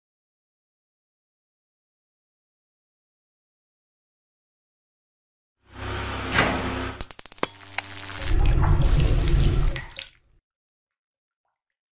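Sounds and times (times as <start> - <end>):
sharp clicks: 7.0 - 8.3.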